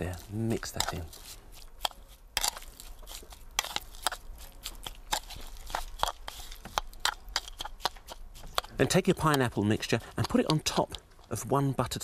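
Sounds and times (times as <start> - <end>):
fork mashing wet fruit: 0.0 - 12.0.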